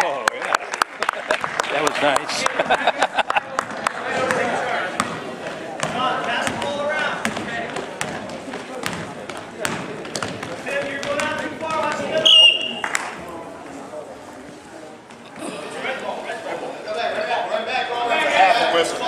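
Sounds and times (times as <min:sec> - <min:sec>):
voices of players and spectators: 0:00.0 - 0:19.0
basketball bouncing on gym floor: 0:03.6 - 0:12.2.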